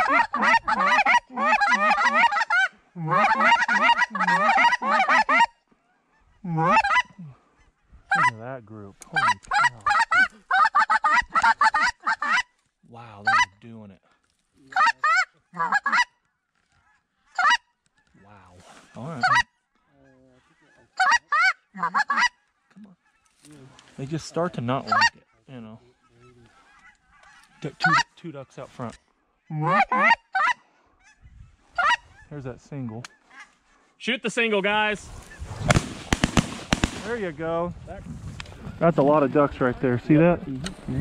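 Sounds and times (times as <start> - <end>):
goose calls honking and clucking: 0.0 - 8.4, 9.0 - 12.6, 13.2 - 13.6, 14.7 - 23.8, 24.7 - 33.8.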